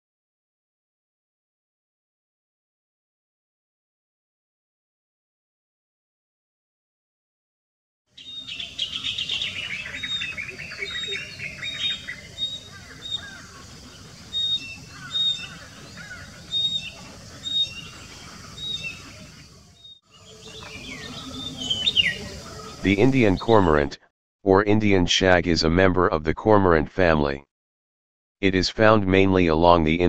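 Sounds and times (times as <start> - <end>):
birds singing and chirping: 8.2 - 23.9.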